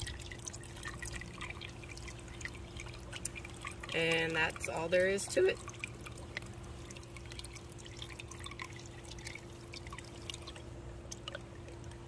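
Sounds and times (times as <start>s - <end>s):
steady low hum: 0.0s - 12.0s
water swirling and trickling: 0.0s - 12.0s.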